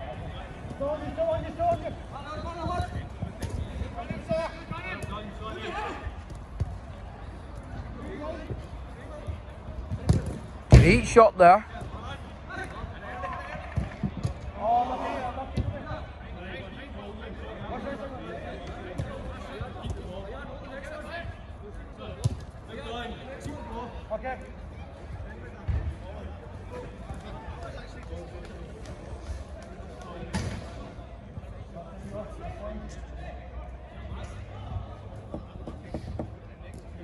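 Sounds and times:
background hubbub: 0:00.0 - 0:37.0.

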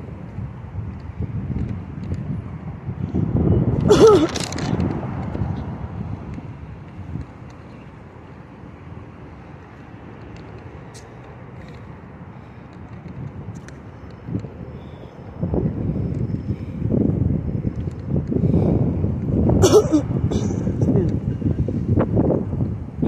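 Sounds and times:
city street traffic hum: 0:00.0 - 0:23.0
wind buffeting microphone: 0:00.0 - 0:23.0.

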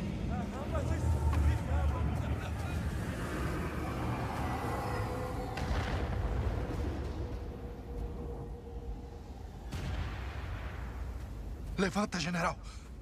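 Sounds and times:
continuous low rumble: 0:00.0 - 0:13.0.

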